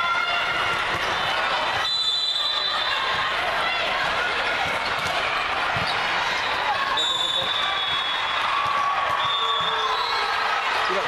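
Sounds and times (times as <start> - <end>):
murmur of crowd voices: 0.0 - 11.0.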